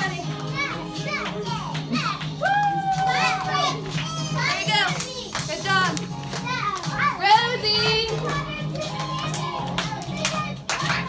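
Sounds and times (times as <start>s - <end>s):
children talking and calling out: 0.0s - 11.0s
music playing: 0.0s - 11.0s.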